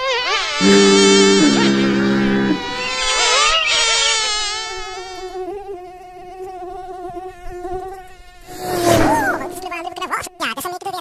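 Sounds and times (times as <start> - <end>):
mosquito buzzing: 0.0 - 8.6
loud noisy burst: 0.6 - 3.2.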